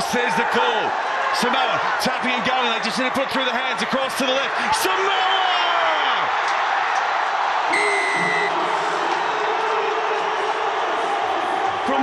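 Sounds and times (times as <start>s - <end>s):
stadium crowd cheering: 0.0s - 12.0s
high whistle blast: 7.7s - 8.6s.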